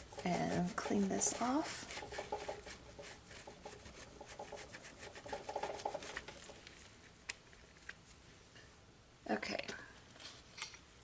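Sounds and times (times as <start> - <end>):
baby wipe rubbing a stamp: 0.0 - 6.3.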